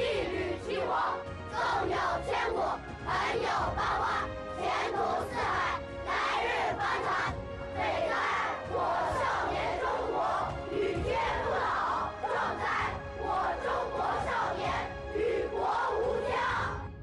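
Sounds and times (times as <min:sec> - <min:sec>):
children reciting in unison: 0:00.0 - 0:16.8
background music with held note: 0:00.0 - 0:17.0.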